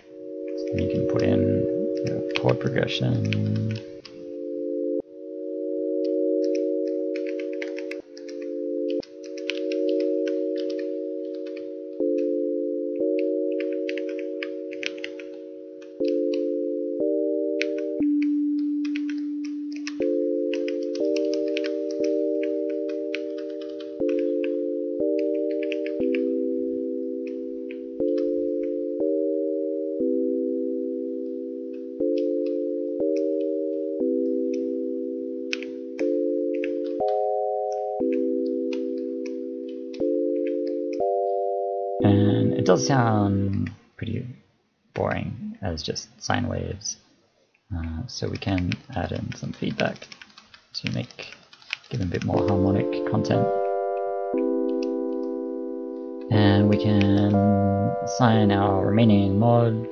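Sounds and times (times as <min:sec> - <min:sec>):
synth sine wave chords: 0:00.0 - 0:43.7, 0:52.3 - 0:59.9.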